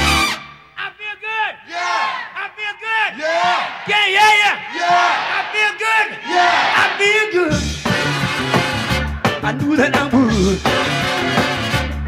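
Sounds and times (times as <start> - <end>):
group of voices shouting: 1.5 - 7.2.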